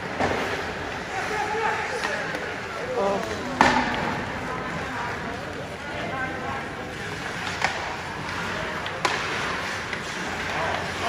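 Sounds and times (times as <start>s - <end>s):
sharp crack of hockey play: 0.0s - 5.3s, 6.8s - 11.0s
ice rink noise: 0.0s - 11.0s.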